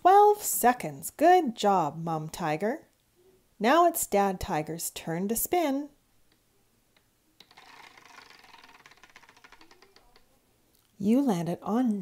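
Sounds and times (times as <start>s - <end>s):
prize wheel pointer clicking: 7.4s - 10.2s.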